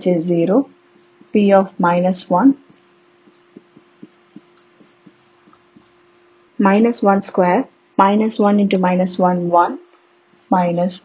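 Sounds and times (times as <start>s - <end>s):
faint steady hum: 0.0s - 11.0s
pen writing on paper: 2.6s - 6.0s.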